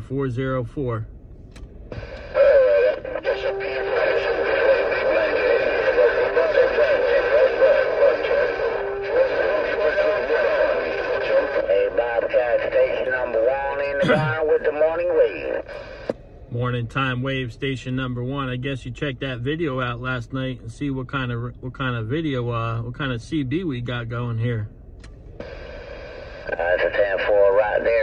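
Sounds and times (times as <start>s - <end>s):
radio static: 1.9s - 17.0s, 25.4s - 28.0s
distorted radio voice: 2.0s - 16.1s, 25.4s - 28.0s.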